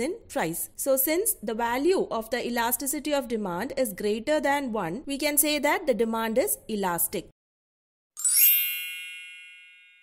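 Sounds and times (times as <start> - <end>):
bright high-pitched ding: 8.2 - 10.0.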